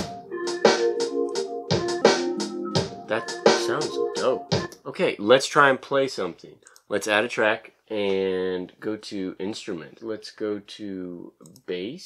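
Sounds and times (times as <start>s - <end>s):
organ-like keyboard chord: 0.0s - 4.5s.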